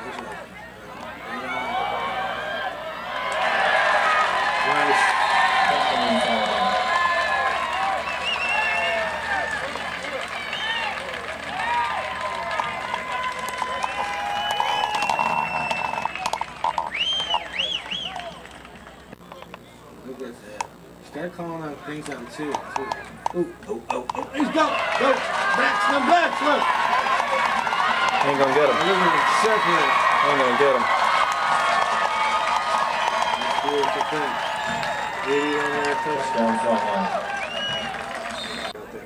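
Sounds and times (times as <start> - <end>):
crowd cheering and shouting: 0.0 - 18.9, 24.2 - 38.8
high whooping calls: 0.0 - 19.2, 22.5 - 38.8.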